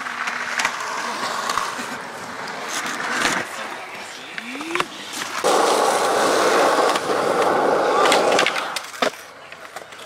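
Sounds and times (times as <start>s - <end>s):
skateboard wheels rolling on concrete: 0.0s - 10.0s
skateboard clacks: 4.3s - 10.0s.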